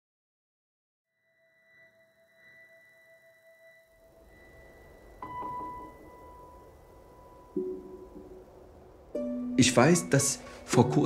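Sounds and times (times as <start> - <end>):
sustained musical drone: 1.6 - 11.0
low hum: 1.7 - 11.0.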